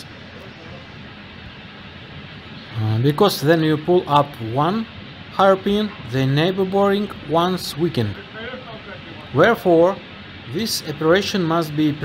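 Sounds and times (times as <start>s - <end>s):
soft background hiss: 0.0s - 12.0s.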